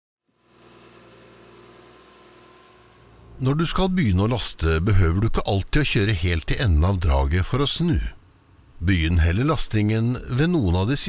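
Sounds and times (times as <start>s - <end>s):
diesel engine running: 0.3s - 10.9s.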